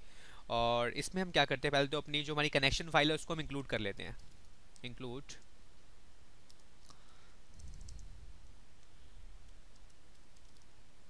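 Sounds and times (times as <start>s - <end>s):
computer keyboard keys clicking: 6.5s - 8.1s, 9.5s - 10.7s.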